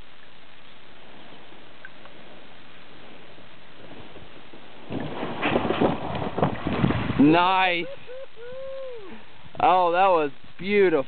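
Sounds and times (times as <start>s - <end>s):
kayak scraping over grass: 0.8s - 7.4s
kayak splashing into water: 4.8s - 7.4s
kayak knocks and bumps: 4.9s - 7.2s.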